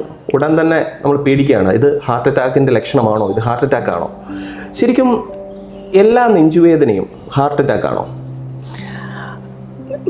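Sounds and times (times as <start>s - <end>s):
breathy hiss: 4.2s - 5.8s, 8.1s - 9.7s.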